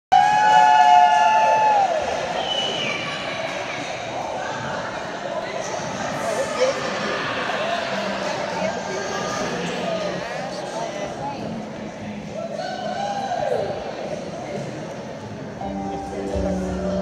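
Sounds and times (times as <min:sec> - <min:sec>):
crowd talking and cheering: 0:00.1 - 0:17.0.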